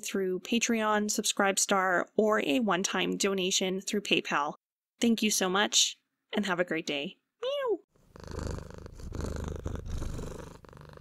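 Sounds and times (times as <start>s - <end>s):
cat purring: 8.0s - 11.0s.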